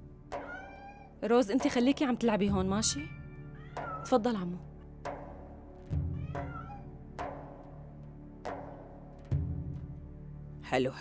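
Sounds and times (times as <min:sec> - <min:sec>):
background music: 0:00.0 - 0:11.0
kitten mewing: 0:00.5 - 0:01.1, 0:06.2 - 0:06.9.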